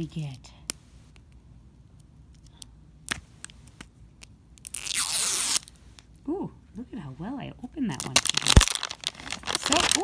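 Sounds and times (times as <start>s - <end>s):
sticker tearing: 4.6s - 5.7s.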